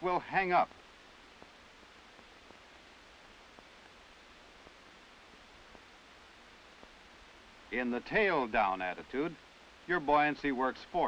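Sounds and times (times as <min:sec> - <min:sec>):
film soundtrack hiss: 0:00.0 - 0:11.0
faint ticks: 0:00.7 - 0:07.6.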